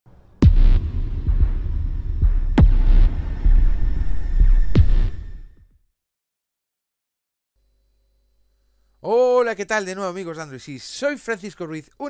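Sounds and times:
sharp hits dropping in pitch: 0:00.4 - 0:05.5
throbbing electronic rumble: 0:00.4 - 0:05.6.

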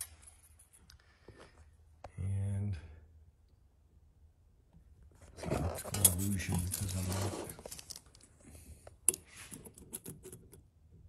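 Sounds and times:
person speaking: 0:05.4 - 0:07.7.

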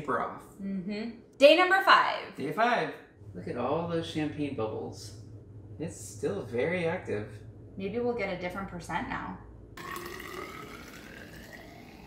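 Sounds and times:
fizzy liquid pouring into jar: 0:09.8 - 0:12.0.

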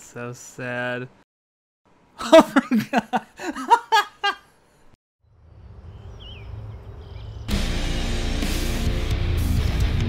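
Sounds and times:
person laughing: 0:02.2 - 0:04.5
low rumble: 0:05.2 - 0:07.5
heavy electric guitar music: 0:07.5 - 0:10.0.

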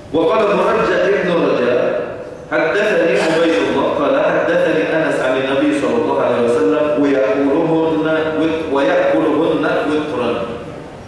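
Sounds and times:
man speaking: 0:00.1 - 0:10.6.

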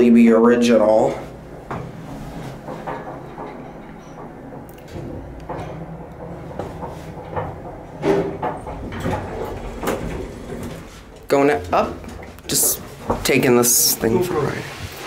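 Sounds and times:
elevator low hum: 0:00.0 - 0:15.0
knocking and clatter: 0:00.6 - 0:15.0
elevator cab clicks and rattles: 0:00.7 - 0:14.4.

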